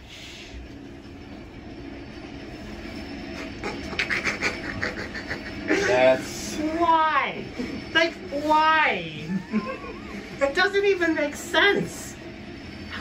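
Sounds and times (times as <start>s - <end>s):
elevator running rumble: 0.0s - 13.0s
rhythmic wheel squeak: 0.5s - 13.0s.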